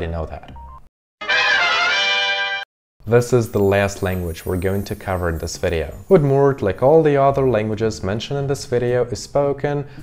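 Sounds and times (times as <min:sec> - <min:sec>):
short musical jingle: 0:01.2 - 0:02.6.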